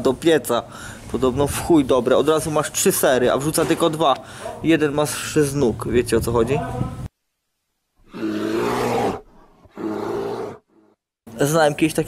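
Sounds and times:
big cat roaring: 8.1 - 10.9.

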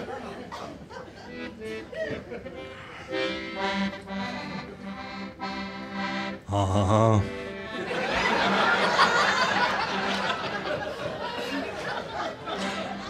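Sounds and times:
accordion playing chords: 1.3 - 13.0.

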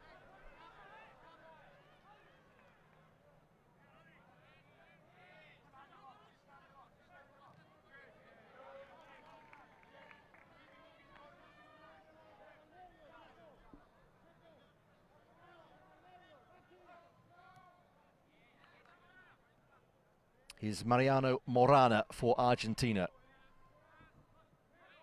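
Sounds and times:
quiet stadium ambience: 0.0 - 25.0.

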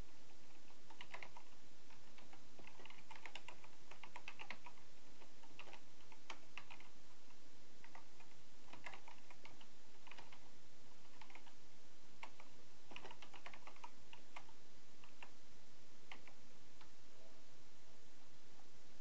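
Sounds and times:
keyboard typing: 0.5 - 7.0, 7.8 - 11.6, 12.2 - 15.4, 16.1 - 16.9.

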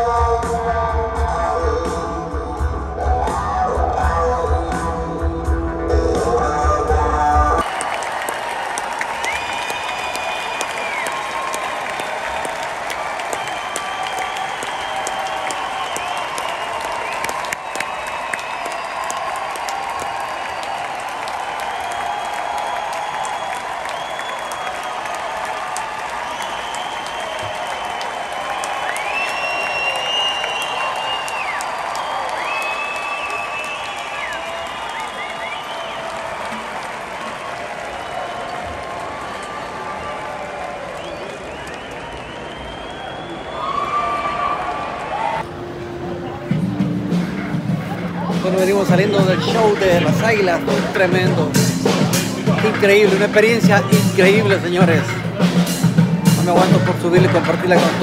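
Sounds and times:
crowd applauding and cheering: 3.2 - 58.0
high whistles: 9.1 - 36.5, 40.9 - 44.7.

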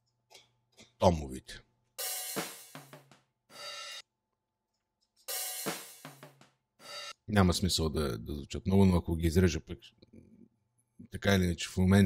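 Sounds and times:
cymbal and drum hits: 2.0 - 4.0, 5.3 - 7.2.

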